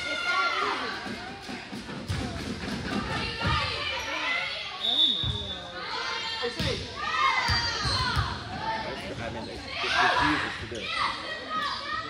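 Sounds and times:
people calling and shouting: 0.0 - 12.0.

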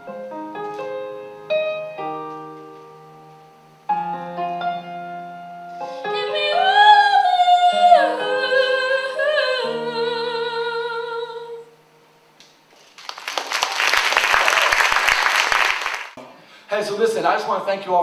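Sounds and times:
woman singing into a microphone: 6.0 - 11.7
audience applause: 12.8 - 16.2.

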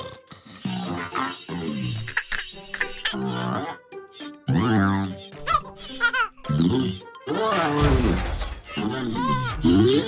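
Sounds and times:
background music: 0.0 - 10.0
cartoon crash shattering: 7.7 - 8.7.

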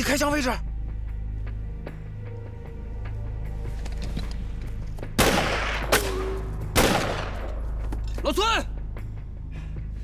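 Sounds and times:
rifle shots echoing: 5.2 - 6.2, 6.8 - 7.5.

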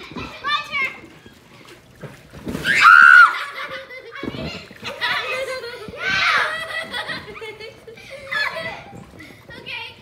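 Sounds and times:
girls shouting and squealing: 2.6 - 4.3, 5.0 - 8.9.

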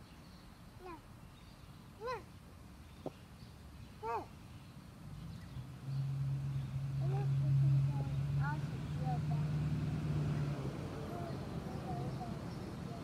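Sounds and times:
low engine hum: 4.9 - 13.0.

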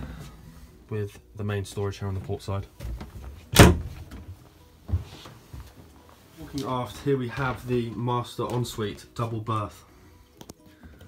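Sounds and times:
wooden locker door banging shut: 3.5 - 4.2.

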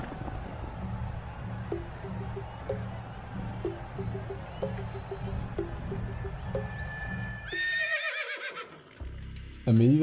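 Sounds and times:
rhythmic background music: 0.6 - 7.7
horse whinnying: 7.5 - 8.9.

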